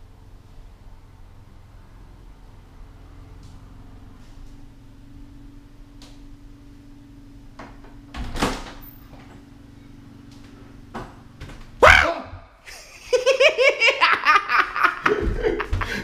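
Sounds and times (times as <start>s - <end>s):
faint steady hum: 0.0s - 16.0s
loud yell: 11.8s - 12.5s
man laughing hard: 12.6s - 16.0s.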